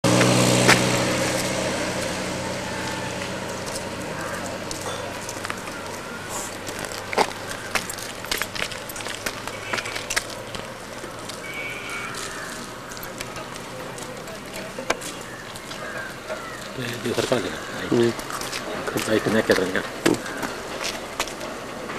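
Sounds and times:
motor engine hum: 0.0 - 21.9
faint clicks and crackles: 3.2 - 21.9.

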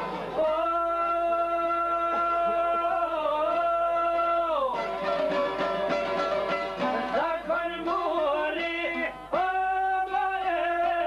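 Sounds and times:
plucked lutes: 0.0 - 11.0.

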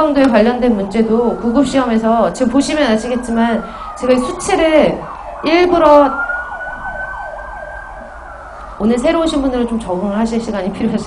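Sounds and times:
emergency siren wailing: 0.0 - 11.0.

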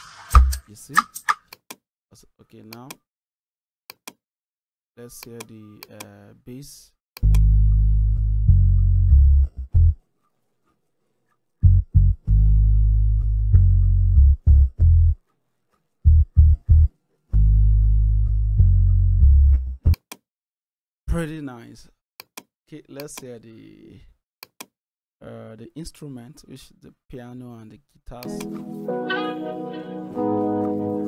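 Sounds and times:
bass notes: 7.2 - 10.0, 11.6 - 15.2, 16.0 - 20.0.

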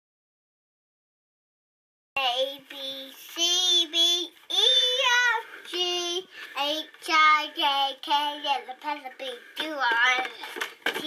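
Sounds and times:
boy singing high notes: 2.3 - 10.1.

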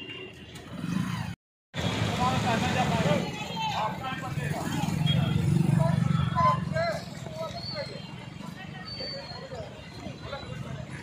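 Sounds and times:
people talking: 2.0 - 11.0.

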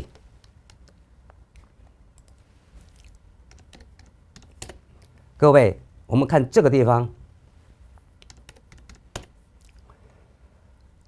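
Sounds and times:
computer keyboard clicks: 3.5 - 4.8, 8.2 - 9.3.

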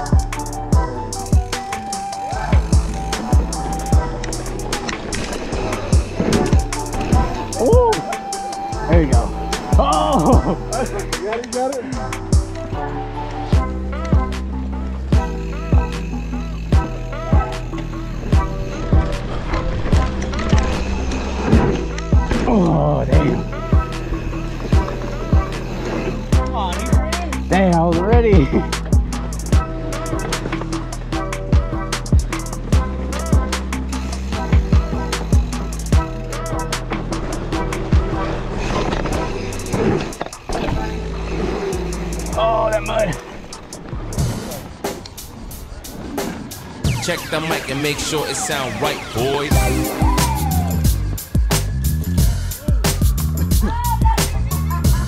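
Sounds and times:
bike tyres rolling on dirt: 1.3 - 11.5, 12.3 - 55.0
background music with voice: 21.8 - 39.8, 46.9 - 51.4.

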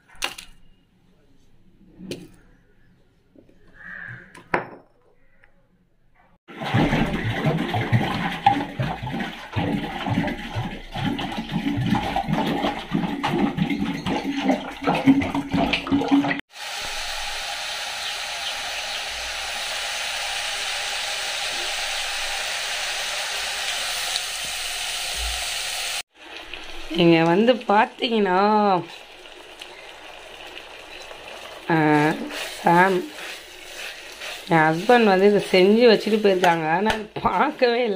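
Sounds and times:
food sizzling in hot oil: 16.5 - 36.5.

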